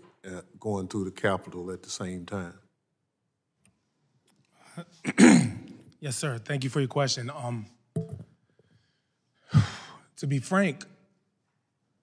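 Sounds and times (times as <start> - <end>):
man sighing: 9.4 - 10.0.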